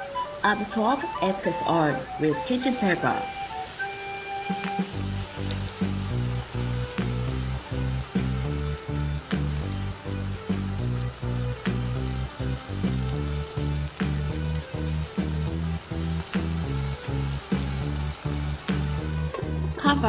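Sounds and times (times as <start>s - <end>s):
chicken sizzling in a pan: 0.0s - 20.0s
music with beat and bass: 4.0s - 20.0s.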